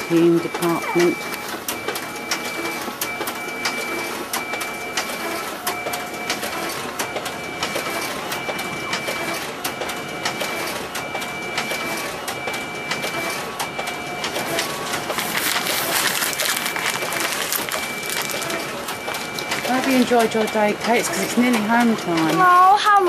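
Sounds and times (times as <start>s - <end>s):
photocopier whine and clicks: 0.0s - 23.0s.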